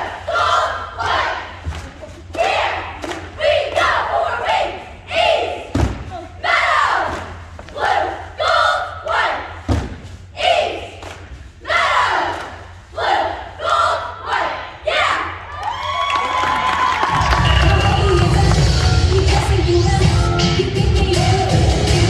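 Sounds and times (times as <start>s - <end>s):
cheerleaders shouting in unison: 0.0s - 9.7s, 10.3s - 11.0s, 11.6s - 18.6s.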